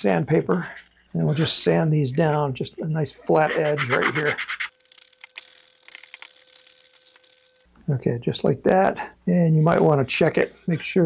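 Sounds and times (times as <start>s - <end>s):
sandpaper rasping on wood: 3.4s - 4.7s.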